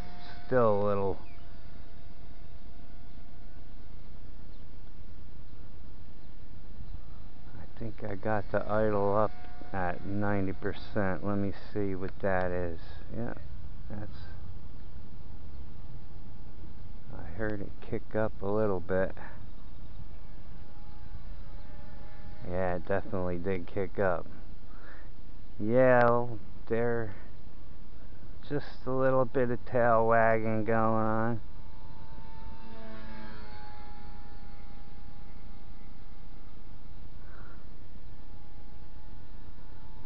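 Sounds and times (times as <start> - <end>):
rc helicopter motor whine: 0.0 - 40.0.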